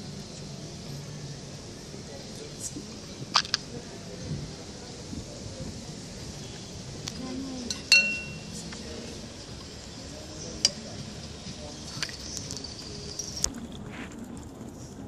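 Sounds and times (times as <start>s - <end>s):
glass parts clinking: 7.7s - 8.5s.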